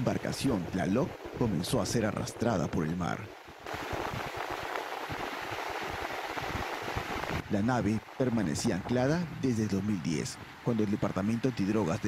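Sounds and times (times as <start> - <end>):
ocean waves breaking: 0.0 - 12.0.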